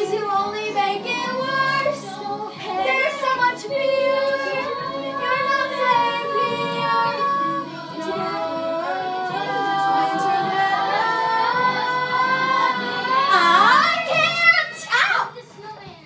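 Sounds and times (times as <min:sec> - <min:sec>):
girls singing: 0:00.0 - 0:15.4.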